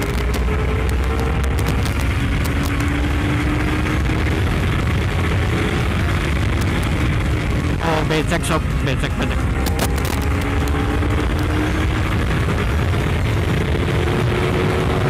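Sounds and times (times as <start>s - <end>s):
motorcycle engine accelerating: 0.0s - 15.0s
wind rush on microphone: 0.0s - 15.0s.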